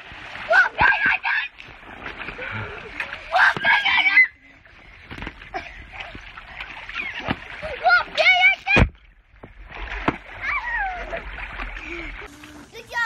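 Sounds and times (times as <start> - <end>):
water slaps: 0.0 - 13.0
water splashing in pool: 0.0 - 13.0
child squealing: 10.4 - 11.3.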